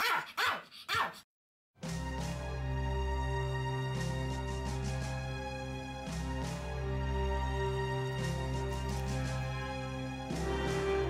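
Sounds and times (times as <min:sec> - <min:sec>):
dog barking: 0:00.0 - 0:01.2
music: 0:01.8 - 0:11.0.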